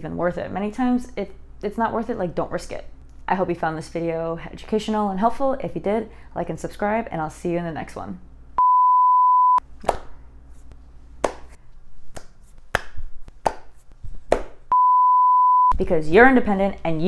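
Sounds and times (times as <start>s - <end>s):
censor bleeps: 8.6s - 9.6s, 14.7s - 15.8s.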